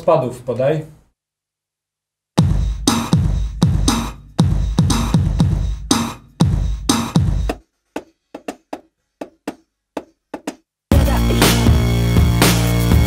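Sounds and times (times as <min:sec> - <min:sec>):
drum beat with bass thumps: 0:02.4 - 0:13.0.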